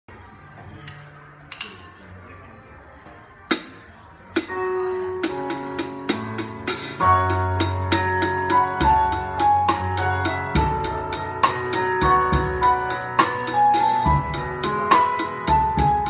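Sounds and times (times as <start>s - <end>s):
drum kit playing: 3.5s - 16.0s
backing music with held chords: 5.0s - 16.0s
bass line: 5.2s - 16.0s.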